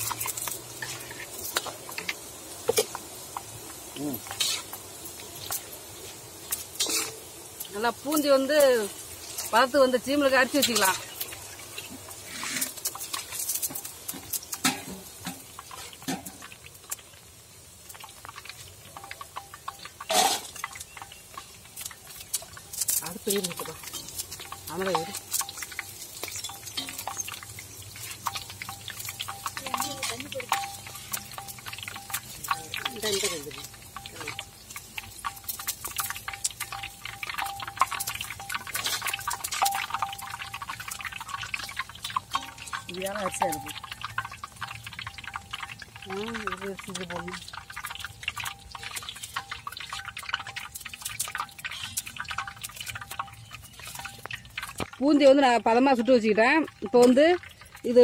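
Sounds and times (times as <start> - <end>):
batter frying in hot oil: 0.0 - 58.0
oil dripping off skimmers: 0.0 - 58.0
oil spattering: 0.0 - 58.0
metal ladles clicking: 17.9 - 58.0.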